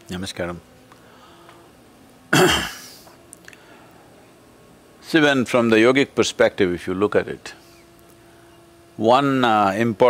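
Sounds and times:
man clearing his throat: 2.3 - 3.1.

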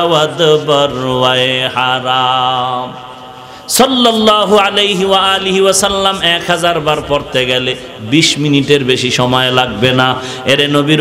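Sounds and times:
man chanting a religious verse: 0.0 - 11.0.

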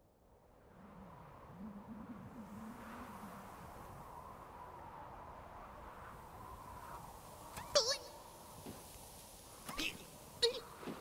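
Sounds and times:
cartoon squirrel squeaky calls: 7.6 - 8.1.

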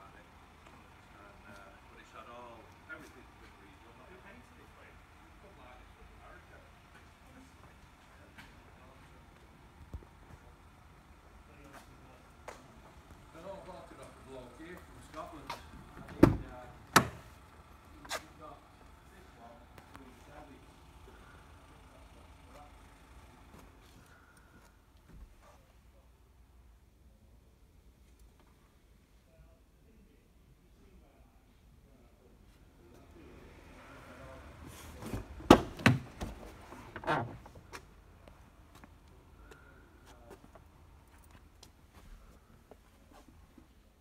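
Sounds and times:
car door thump: 16.0 - 17.3, 35.1 - 36.5.

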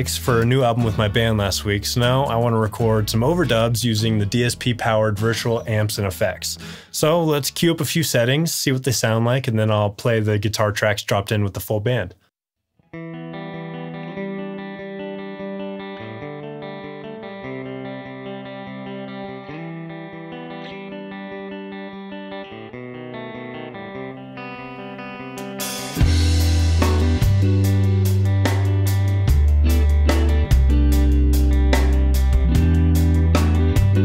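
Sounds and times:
electric guitar clean tone: 12.8 - 34.0
heavy bass and drum hits: 26.0 - 34.0.

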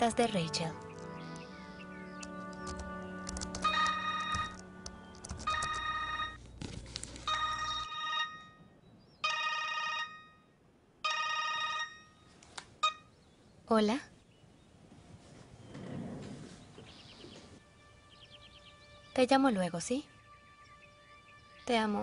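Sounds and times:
mobile phone ringtone: 3.6 - 4.6, 5.4 - 6.4, 7.3 - 8.6, 9.2 - 12.2.

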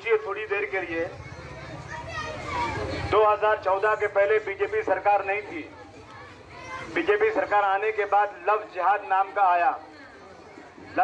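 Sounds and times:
faint crowd voices: 0.0 - 11.0
loud amplified speech: 0.0 - 11.0.

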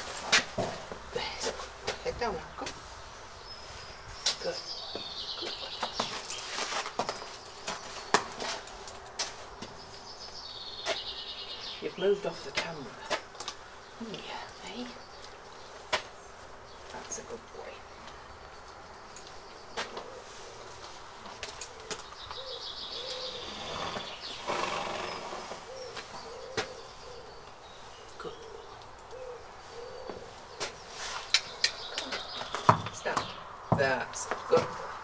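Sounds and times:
small birds chirping: 0.0 - 35.0
dove cooing: 19.9 - 21.0, 21.7 - 27.5, 28.2 - 30.7.

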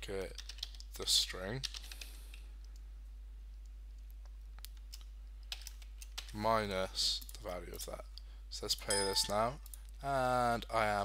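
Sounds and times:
computer keyboard typing: 0.4 - 1.0, 1.6 - 2.0, 4.0 - 6.3.

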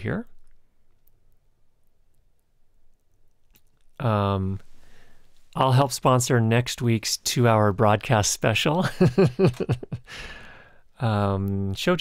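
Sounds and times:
faint scattered clicks: 0.3 - 4.0.

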